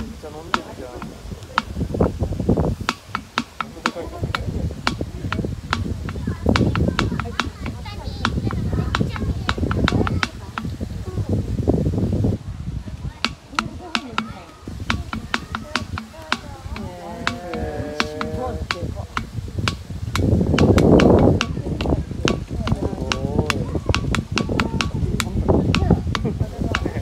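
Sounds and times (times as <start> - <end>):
people talking: 0.0 - 27.0
snout clicking against metal bowl: 13.2 - 27.0.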